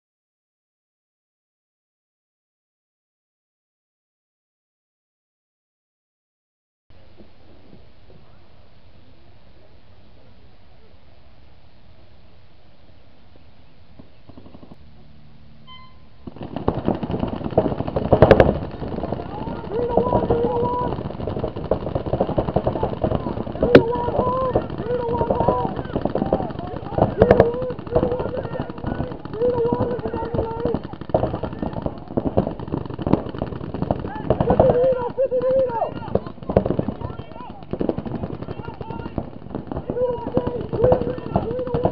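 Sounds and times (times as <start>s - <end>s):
paintball markers firing: 14.1s - 14.8s, 16.2s - 41.9s
short electronic beep: 15.6s - 16.2s
players' voices: 16.4s - 41.9s.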